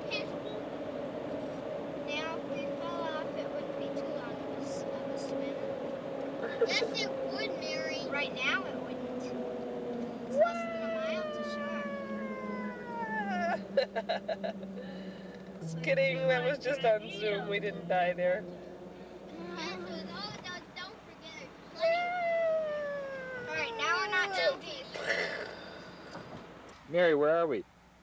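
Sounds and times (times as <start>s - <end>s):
car road noise: 0.0s - 28.0s
long falling wail: 8.6s - 14.6s, 21.8s - 24.6s.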